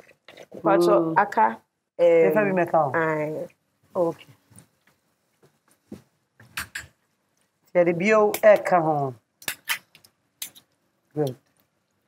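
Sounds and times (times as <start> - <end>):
spoon scraping cooking pot: 9.4 - 10.7.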